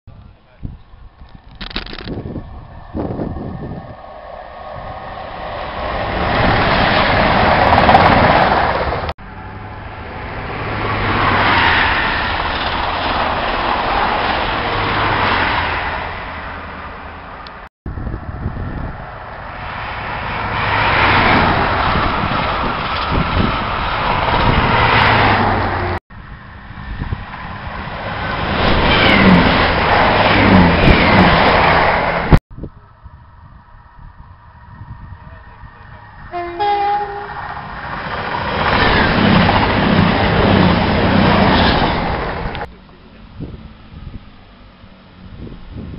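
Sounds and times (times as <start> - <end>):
high-speed trains passing: 0.6 - 45.9.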